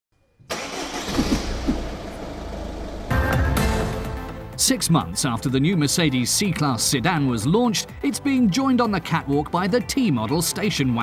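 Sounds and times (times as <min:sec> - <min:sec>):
car engine starting and revving: 0:00.5 - 0:04.6
music: 0:03.0 - 0:11.0.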